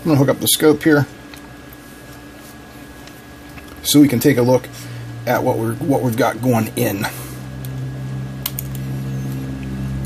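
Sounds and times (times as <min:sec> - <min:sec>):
low electrical hum: 0:00.0 - 0:10.0
probe clip clicking: 0:08.4 - 0:08.8.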